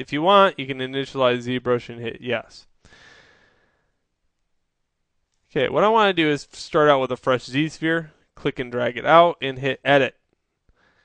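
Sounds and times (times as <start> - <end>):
faint breath: 2.8 - 4.0, 10.7 - 11.0.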